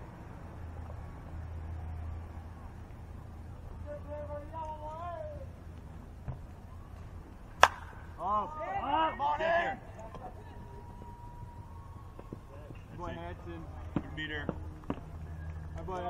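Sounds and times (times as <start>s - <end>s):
voices shouting and cheering: 1.8s - 5.6s, 7.8s - 16.0s
bat cracking a baseball: 7.6s - 8.1s.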